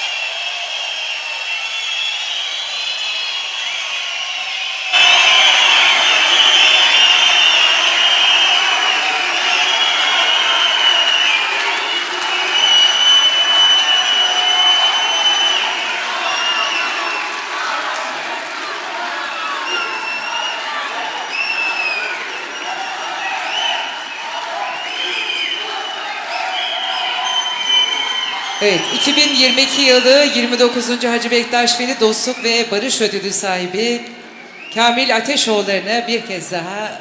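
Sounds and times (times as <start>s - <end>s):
crowd applauding and cheering: 0.0s - 35.4s.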